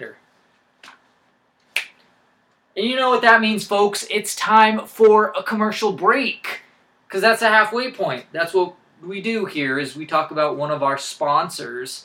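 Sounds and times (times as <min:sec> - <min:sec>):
finger snaps: 0:01.6 - 0:02.6.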